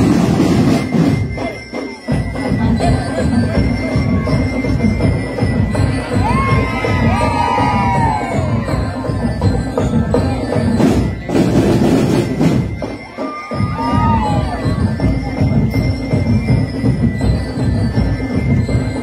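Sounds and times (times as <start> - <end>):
crowd shouting and cheering: 0.0 - 19.0
marching band drums: 0.0 - 19.0.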